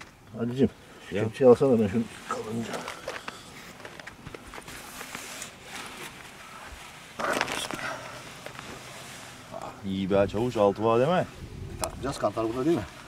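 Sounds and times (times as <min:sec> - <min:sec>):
net mesh rustling: 0:02.1 - 0:09.6.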